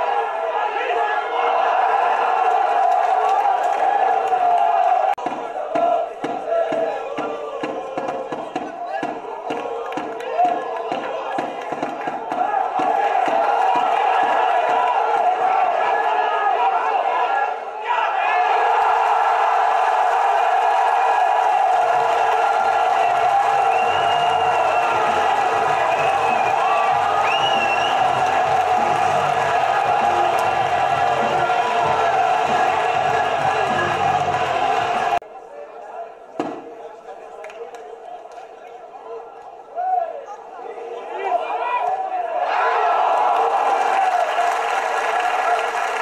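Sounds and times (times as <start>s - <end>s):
crowd chanting and singing: 0.0s - 37.2s.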